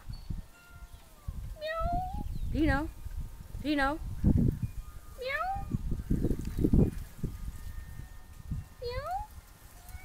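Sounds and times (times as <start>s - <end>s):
cat meowing: 1.6s - 2.2s.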